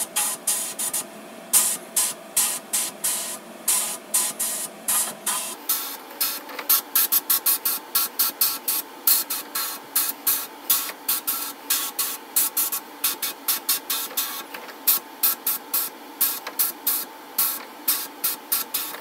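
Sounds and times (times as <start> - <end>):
sandblasting gun hissing bursts: 0.0 - 19.0.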